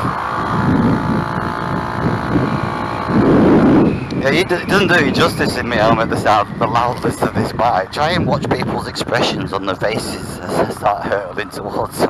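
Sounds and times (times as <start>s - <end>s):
two-stroke scooter engine: 0.0s - 4.3s
wind rumble on microphone: 0.0s - 12.0s.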